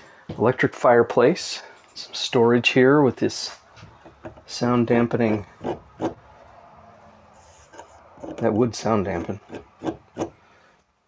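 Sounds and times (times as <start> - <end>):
fingers rubbing wood panel: 5.2 - 6.3, 7.4 - 8.6, 9.2 - 10.4.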